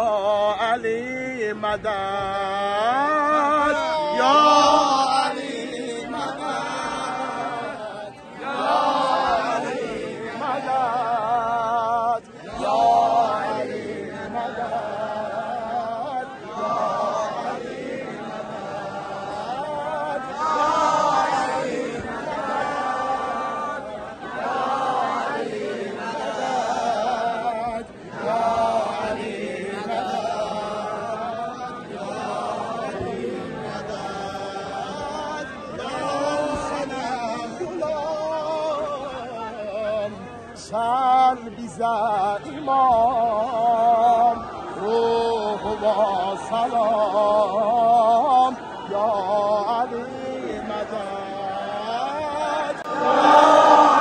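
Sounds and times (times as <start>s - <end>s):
crowd of men chanting: 0.0s - 54.0s
single voice chanting: 44.3s - 54.0s.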